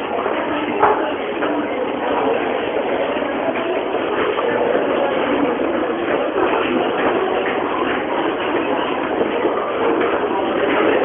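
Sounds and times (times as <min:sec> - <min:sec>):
subway train rumbling: 0:00.0 - 0:11.0.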